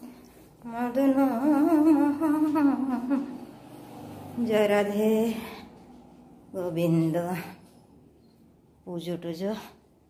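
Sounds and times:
woman humming: 0.6 - 3.5.

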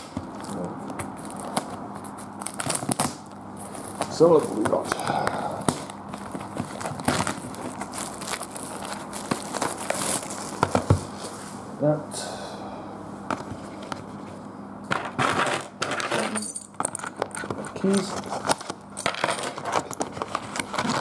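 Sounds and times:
plastic wrap crinkling: 0.3 - 11.2
keys jangling: 16.2 - 17.8.

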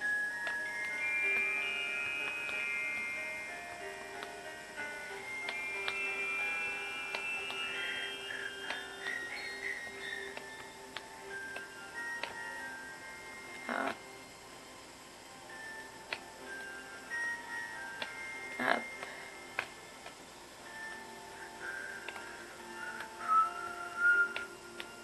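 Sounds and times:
soft chime-like background music: 0.0 - 25.0.

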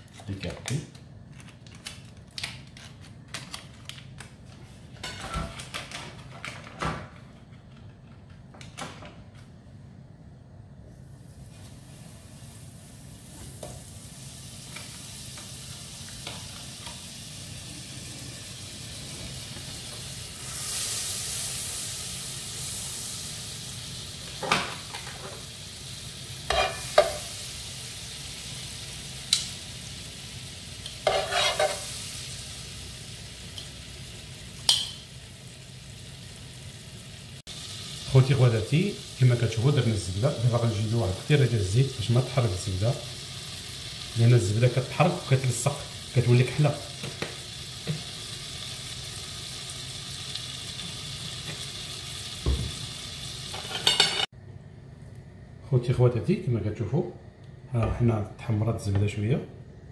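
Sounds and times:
butter sizzling in frying pan: 11.4 - 54.3
spatula scraping and tapping pan: 26.5 - 27.2, 31.0 - 31.8.

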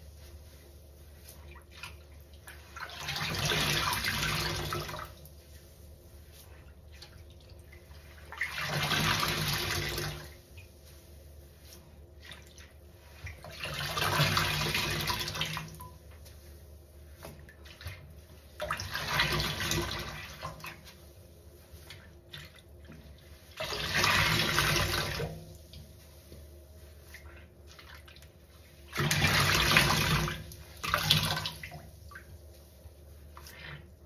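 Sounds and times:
sponge squelching water: 0.0 - 34.0.

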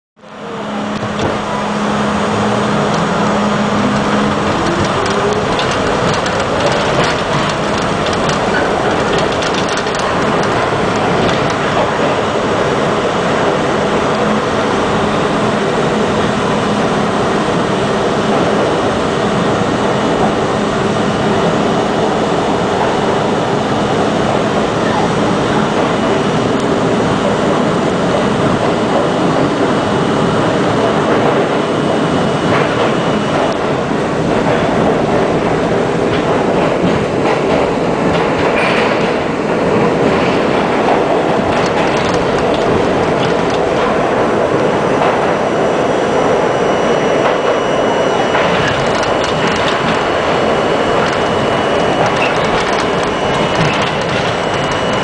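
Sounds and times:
subway train wheels on rails: 0.2 - 55.0.

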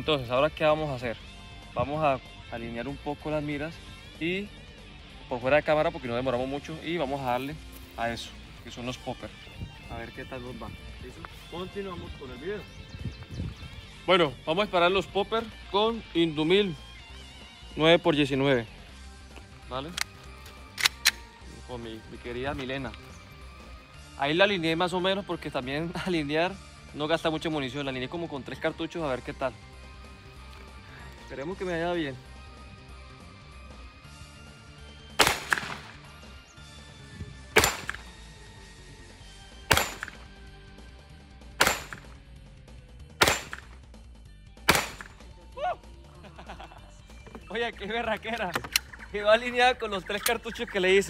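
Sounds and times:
pistol sharp metallic clicks: 19.9 - 21.4, 35.2 - 36.0, 37.6 - 38.2, 39.7 - 40.3, 41.6 - 42.2, 43.2 - 43.8, 44.7 - 45.3, 48.3 - 49.0.

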